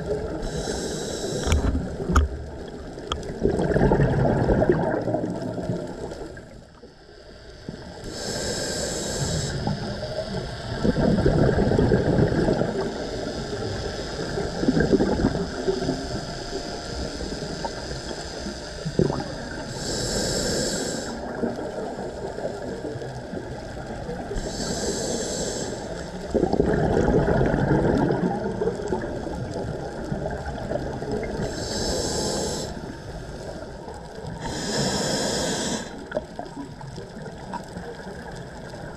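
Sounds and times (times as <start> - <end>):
regulator hissing inhalations: 0.3 - 1.9, 7.1 - 10.7, 12.8 - 21.4, 24.3 - 26.3, 31.3 - 36.2
gurgling exhaled bubbles: 1.4 - 6.7, 9.4 - 16.2, 18.9 - 20.2, 21.1 - 24.4, 26.1 - 38.9.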